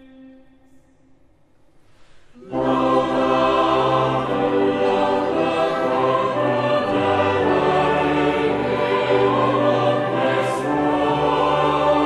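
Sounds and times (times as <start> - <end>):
low wind instrument accompaniment: 0.0 - 1.6, 2.3 - 12.0
choir singing held chords: 2.4 - 12.0.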